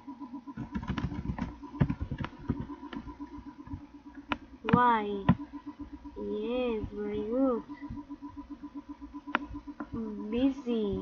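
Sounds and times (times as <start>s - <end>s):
keyboard typing clicks: 0.6s - 5.9s, 6.6s - 11.0s.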